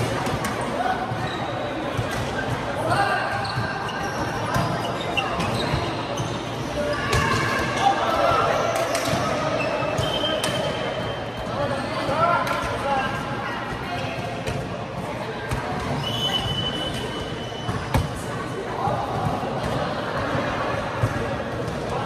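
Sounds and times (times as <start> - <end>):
shoe squeaks on court floor: 3.3 - 7.9, 9.6 - 12.1, 15.9 - 18.2.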